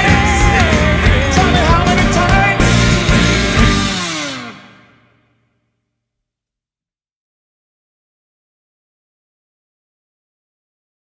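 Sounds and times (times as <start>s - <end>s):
band chord ringing out: 0.0s - 5.3s.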